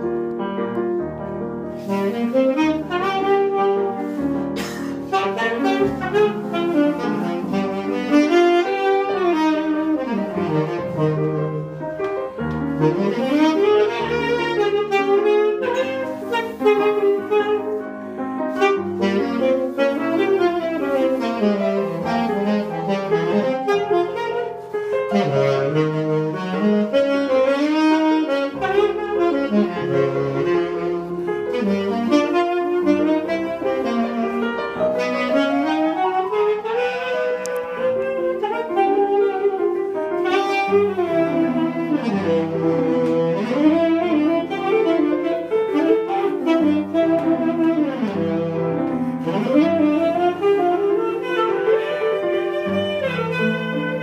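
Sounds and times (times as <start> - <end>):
grand piano accompaniment: 0.0 - 54.0
saxophone jazz melody: 0.0 - 54.0.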